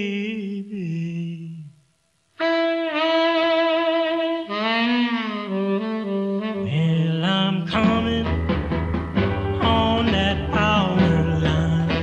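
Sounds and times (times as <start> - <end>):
saxophone long held notes: 2.4 - 7.3
drums and band playing: 7.7 - 12.0.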